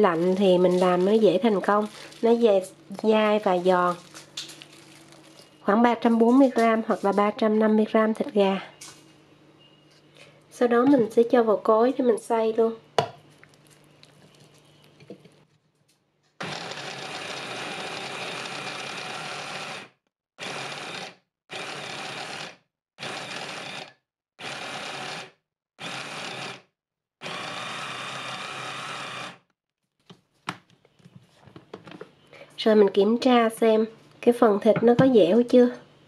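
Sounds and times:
mini chopper motor running: 16.4s - 26.6s, 27.2s - 29.4s.

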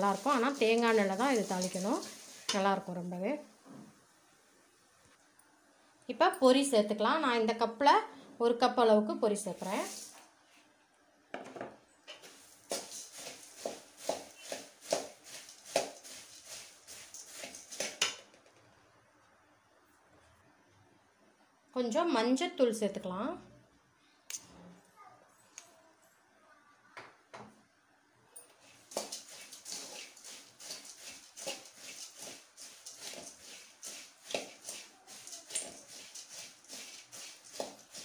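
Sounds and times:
ladle scraping in pan: 12.2s - 18.1s, 28.7s - 38.0s.

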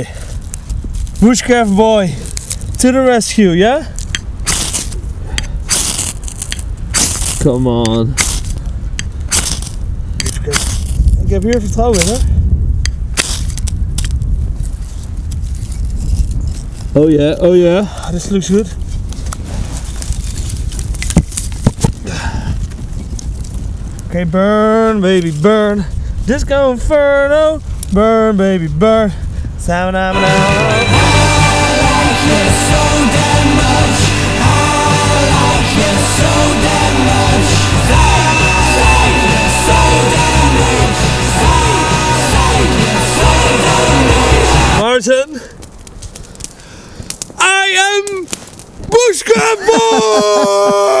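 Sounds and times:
knife scraping ferrocerium rod: 4.1s - 7.4s, 9.3s - 11.0s
man singing a drawn-out note: 30.1s - 44.8s
rock music: 30.1s - 44.8s.

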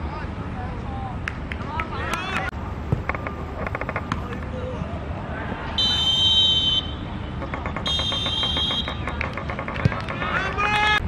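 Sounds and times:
referee whistle blast: 5.8s - 7.0s
fast sharp clicks: 7.4s - 10.4s.

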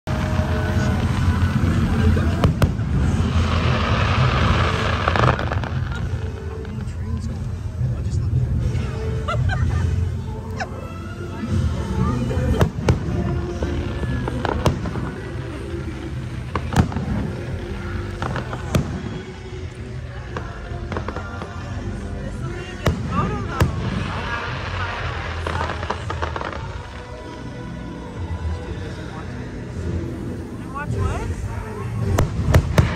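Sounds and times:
fireworks booming: 0.1s - 10.1s, 11.4s - 27.4s, 29.8s - 32.9s
low rumble: 0.1s - 32.9s.

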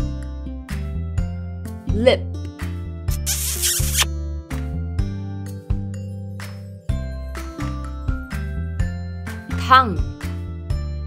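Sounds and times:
noisy swish sound effect: 3.1s - 4.1s.

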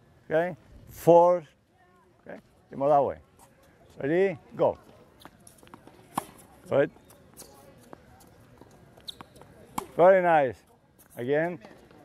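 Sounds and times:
tennis ball tapping hard court: 5.2s - 6.5s, 8.6s - 10.0s.

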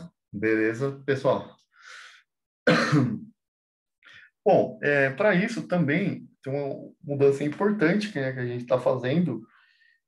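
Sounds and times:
faint breath: 1.7s - 2.3s, 4.0s - 4.4s, 9.4s - 10.0s
man clearing throat: 2.7s - 3.4s.

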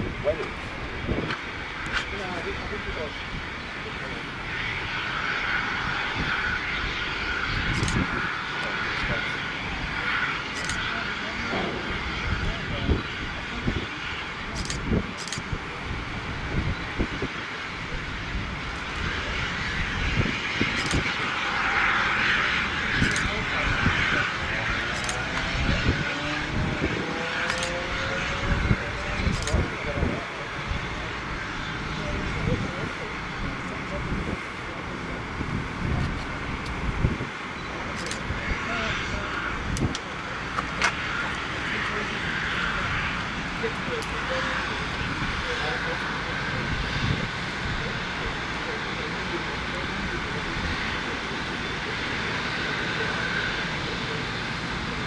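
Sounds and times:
jet engines running: 0.0s - 55.0s
indistinct voices: 7.2s - 55.0s
sharp clicks: 27.5s - 27.7s.

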